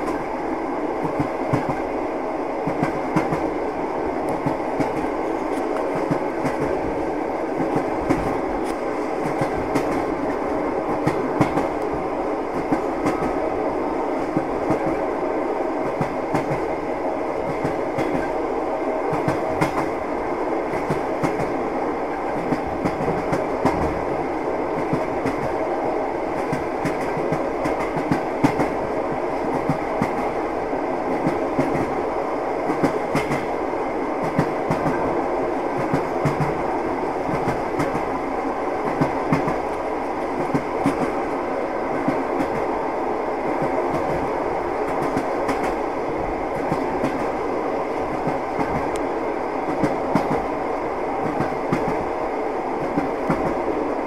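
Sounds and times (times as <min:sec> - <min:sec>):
train wheels rumbling on rails: 0:00.0 - 0:54.0.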